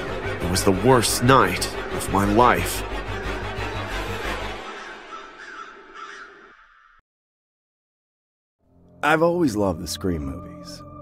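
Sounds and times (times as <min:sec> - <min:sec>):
crow cawing: 0:02.8 - 0:07.0.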